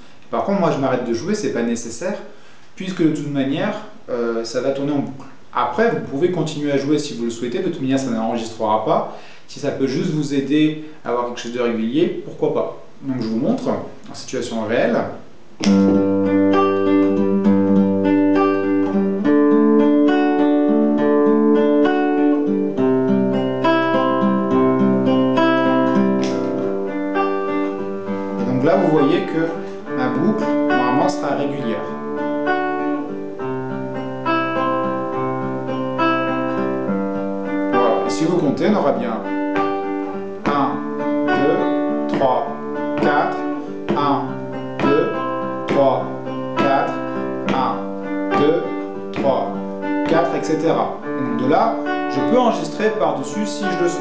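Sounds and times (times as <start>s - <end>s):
guitar strumming chords: 15.6s - 54.0s.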